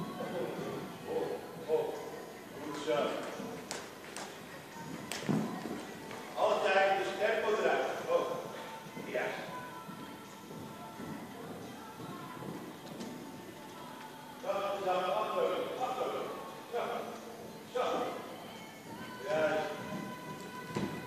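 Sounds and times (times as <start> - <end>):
voices in hall: 0.0 - 12.6, 13.7 - 21.0
horse hooves thudding on sand: 2.6 - 14.8, 18.7 - 21.0
music in hall: 18.3 - 21.0.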